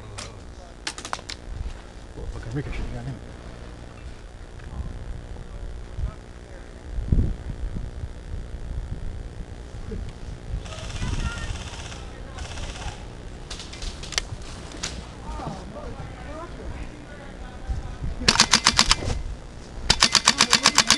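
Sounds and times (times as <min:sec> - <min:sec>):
airsoft gun bursts: 0:10.6 - 0:14.2, 0:18.3 - 0:19.2, 0:19.9 - 0:20.9
airsoft gun single shots: 0:18.3 - 0:19.2, 0:19.9 - 0:20.9.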